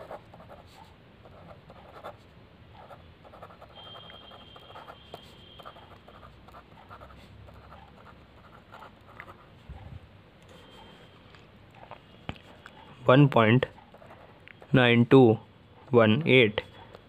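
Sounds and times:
pen scratching on paper: 0.0s - 2.2s, 2.8s - 9.5s, 13.6s - 14.8s.

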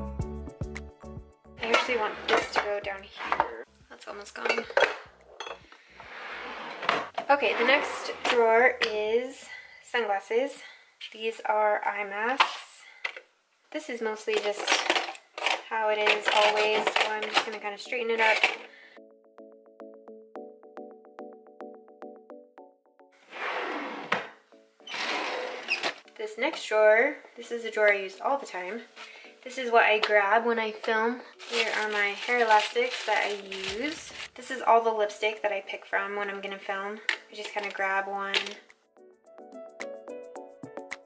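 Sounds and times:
drawer sliding shut: 6.0s - 8.4s, 23.3s - 26.0s
metal cans clinking: 14.4s - 17.6s, 18.2s - 18.7s.

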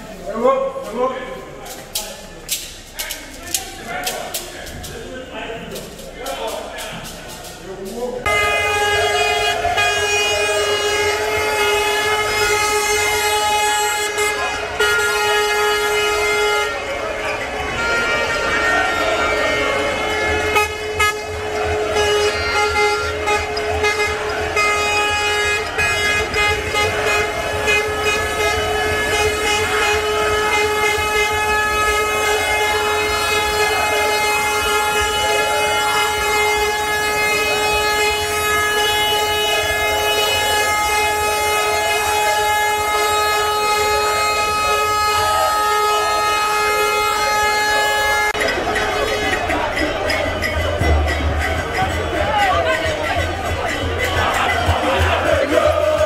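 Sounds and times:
low engine rumble: 0.0s - 56.0s
vehicle horn blast: 8.2s - 56.0s.

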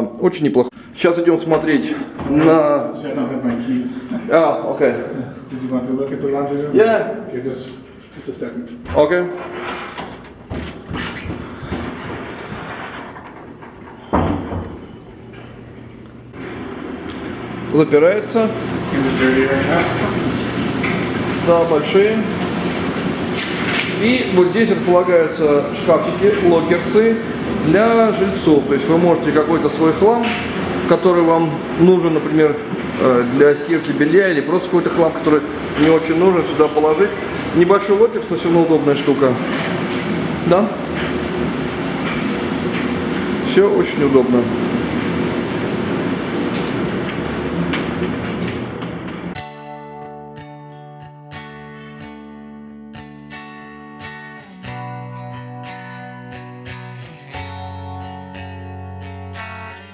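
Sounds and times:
steady background noise: 0.0s - 49.4s
person speaking: 23.9s - 39.6s.

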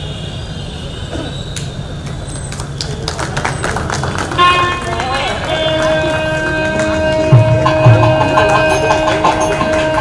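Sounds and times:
clapping: 1.6s - 10.0s
music with long held note: 5.4s - 10.0s.

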